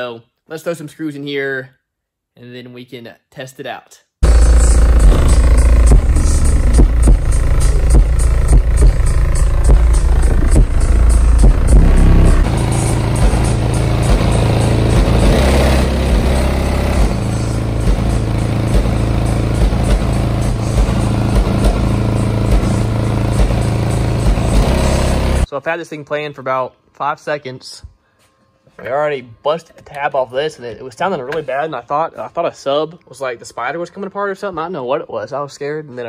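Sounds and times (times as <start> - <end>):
loud bass-heavy music: 4.2 - 25.5.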